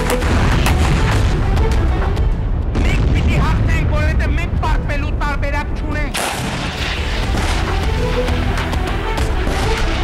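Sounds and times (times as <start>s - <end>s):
explosion blast: 2.7s - 5.0s, 6.1s - 8.0s
man's voice: 2.7s - 6.2s.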